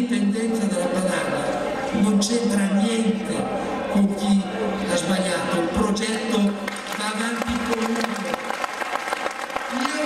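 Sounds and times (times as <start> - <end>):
man speaking over public address: 0.0 - 8.6, 9.6 - 10.0.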